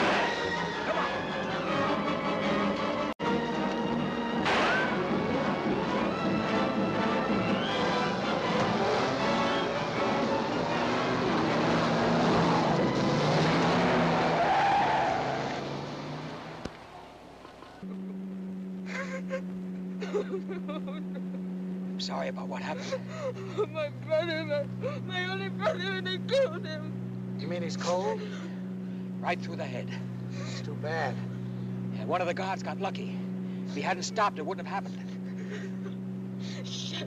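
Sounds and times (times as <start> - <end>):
dramatic orchestral music: 0.0 - 11.7
low car engine hum: 0.0 - 37.0.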